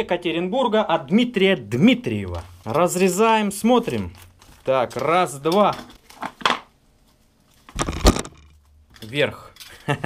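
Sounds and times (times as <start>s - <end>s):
plastic wrapping crinkling: 2.3s - 6.4s.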